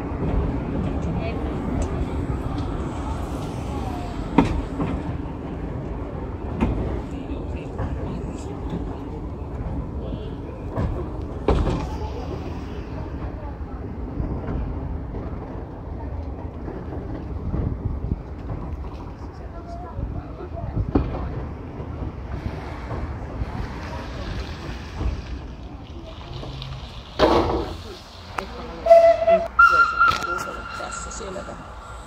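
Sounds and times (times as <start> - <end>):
train rumbling on track: 0.0 - 32.0.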